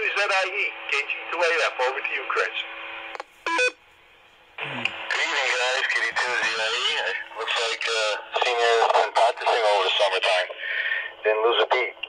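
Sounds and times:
person talking over radio speaker: 0.0s - 2.6s, 4.6s - 12.0s.

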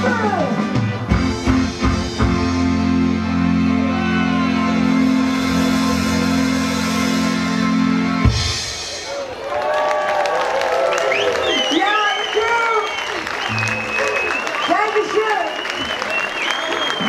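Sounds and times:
reggae band playing: 0.0s - 9.4s, 13.4s - 15.2s
crowd applauding and cheering: 0.8s - 7.4s, 8.2s - 17.0s.

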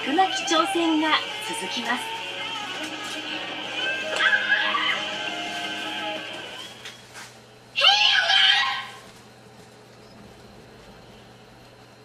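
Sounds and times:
children shouting: 0.0s - 6.7s, 7.8s - 9.1s
steady low hum: 0.0s - 7.8s, 8.8s - 12.0s.

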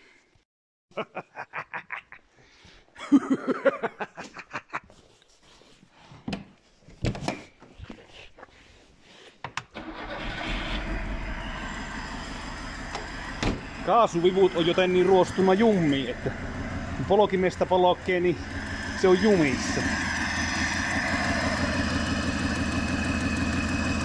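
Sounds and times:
car engine starting and running: 9.8s - 24.0s.

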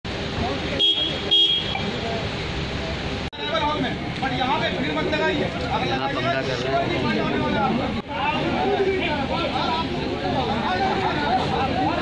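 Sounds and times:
traffic noise: 0.0s - 12.0s
vehicle horn toots: 0.8s - 1.8s.

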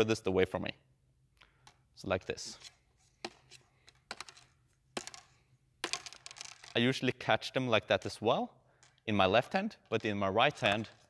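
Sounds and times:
plastic clubs clacking: 3.2s - 6.8s, 9.8s - 11.0s.

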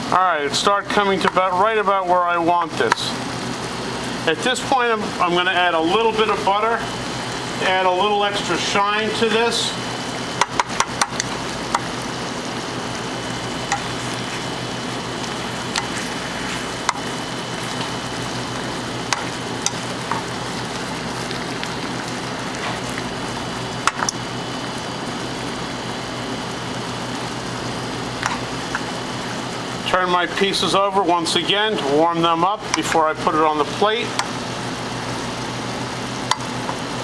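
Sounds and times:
sauce bubbling in a frying pan: 0.0s - 37.0s.

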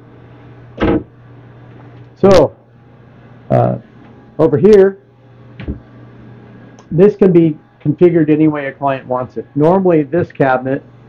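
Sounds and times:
low equipment hum: 0.0s - 11.0s.

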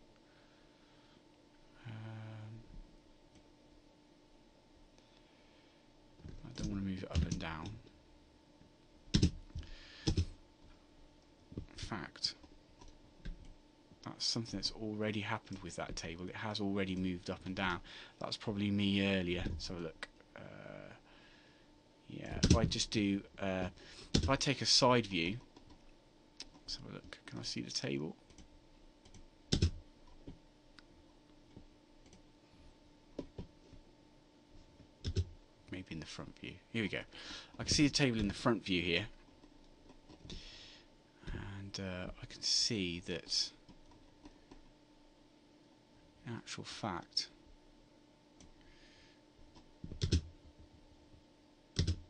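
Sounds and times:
faint electrical hum: 0.0s - 52.0s
computer keys clicking: 9.1s - 10.3s, 22.3s - 22.7s, 28.3s - 30.4s, 35.0s - 35.3s, 49.9s - 50.3s, 51.8s - 52.0s
keyboard and mouse clicks: 9.1s - 10.3s, 51.8s - 52.0s.

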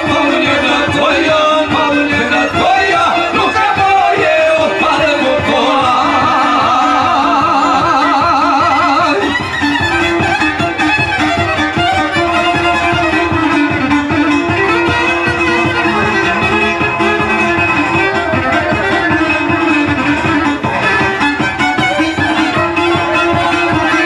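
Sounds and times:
fast strummed strings: 0.0s - 24.0s
violin leading folk band: 0.0s - 24.0s.

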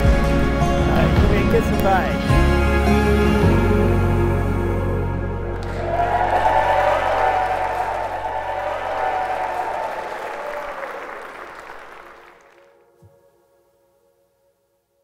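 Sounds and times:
soft background music: 0.0s - 6.3s, 12.6s - 15.0s
congregation applauding: 5.5s - 12.8s.

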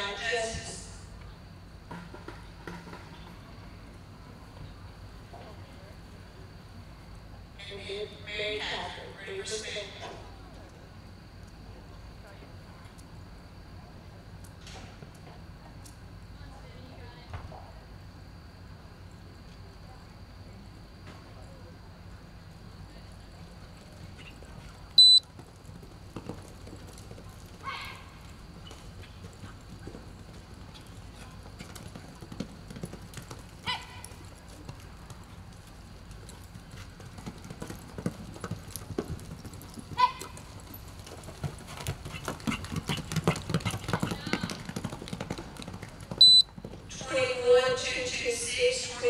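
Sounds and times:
horse hoofbeats on dirt: 23.2s - 48.1s
loud high timer beeps: 25.0s - 25.2s, 46.2s - 46.5s.

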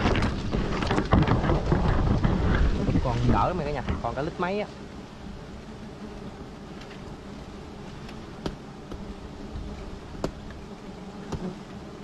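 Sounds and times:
microphone handling and wind noise: 0.0s - 4.3s
leaves rustling and crackling: 0.0s - 12.0s.

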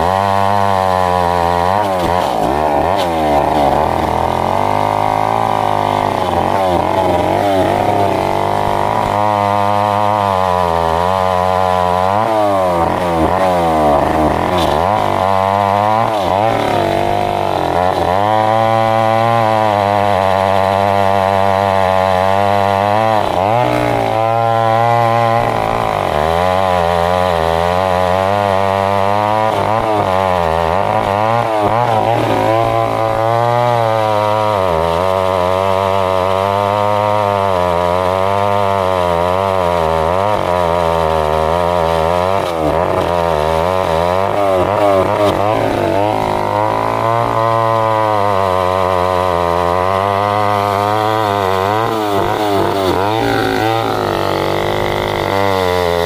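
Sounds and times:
chainsaw cutting log: 0.0s - 56.0s.

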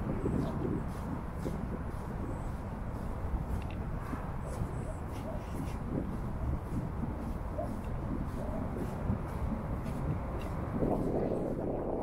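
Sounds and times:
footsteps on sandy ground: 0.0s - 12.0s
low outdoor rumble: 0.0s - 12.0s.

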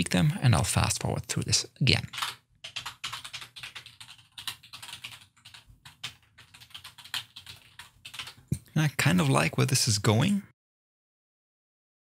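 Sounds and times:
keyboard typing: 1.9s - 9.4s.

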